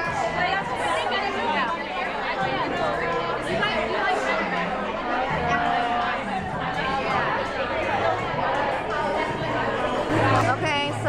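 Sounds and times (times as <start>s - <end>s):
women chattering: 0.0s - 11.0s.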